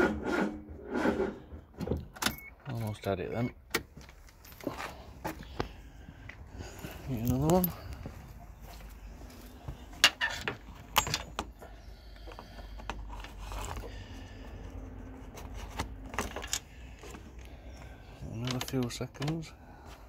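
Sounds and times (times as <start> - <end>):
metallic clicks of engine parts: 15.9 - 17.6, 18.4 - 19.5.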